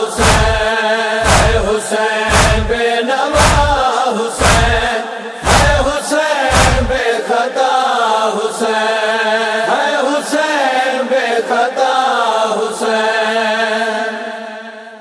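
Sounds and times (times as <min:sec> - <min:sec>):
voices chanting a lament in chorus: 0:00.0 - 0:15.0
deep thump: 0:00.2 - 0:01.7, 0:02.3 - 0:02.8, 0:03.4 - 0:03.8, 0:04.4 - 0:05.9, 0:06.5 - 0:07.0.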